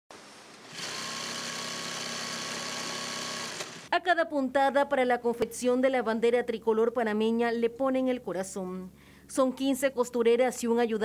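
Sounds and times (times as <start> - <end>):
sewing machine stitching: 0.1 - 3.9.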